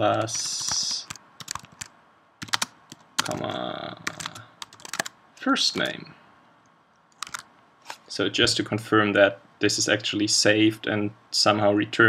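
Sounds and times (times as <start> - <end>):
computer keyboard typing: 0.0 - 5.2, 7.2 - 7.5.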